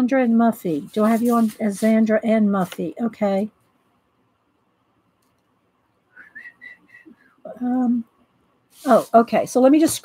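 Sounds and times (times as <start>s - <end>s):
soft whistling: 6.1s - 7.4s.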